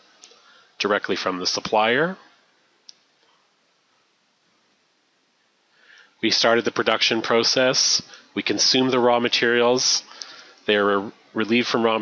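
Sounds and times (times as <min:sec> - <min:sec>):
person speaking: 0:00.0 - 0:02.4, 0:06.2 - 0:12.0.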